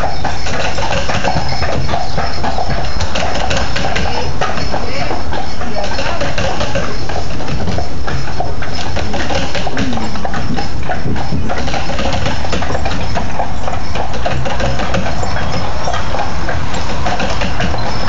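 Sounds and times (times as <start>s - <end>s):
horse hooves clip-clopping: 0.0s - 18.0s
steady low rumble: 0.0s - 18.0s.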